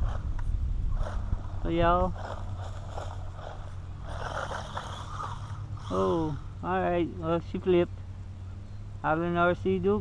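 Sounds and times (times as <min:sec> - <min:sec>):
rc truck motor whine: 0:00.0 - 0:06.8
low steady hum: 0:00.0 - 0:10.0
tyres scrabbling on dirt: 0:00.9 - 0:06.4.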